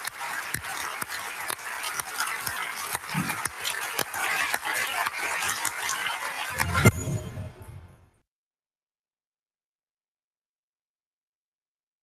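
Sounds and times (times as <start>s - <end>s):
large audience applauding: 0.0s - 6.7s.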